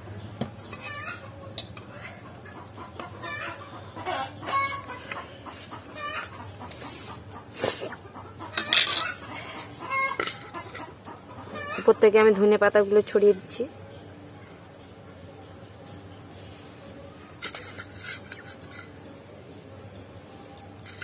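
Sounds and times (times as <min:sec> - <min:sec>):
chickens clucking: 0:00.5 - 0:12.5.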